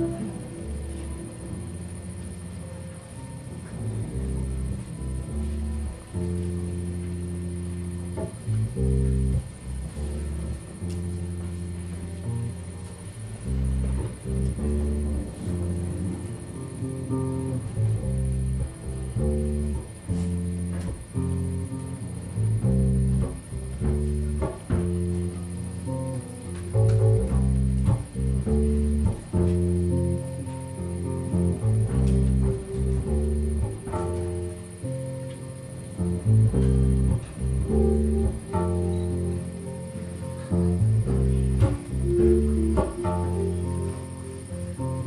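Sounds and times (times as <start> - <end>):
guitar notes: 0.0 - 45.0
plucked bass line: 0.0 - 45.0.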